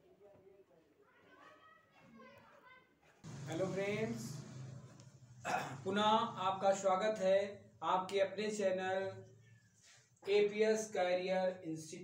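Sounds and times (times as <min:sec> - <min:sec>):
distant children's voices: 0:00.2 - 0:03.3.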